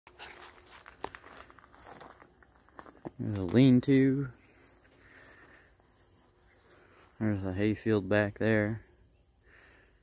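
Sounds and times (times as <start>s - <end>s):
high-pitched insect trill: 0.4s - 10.0s.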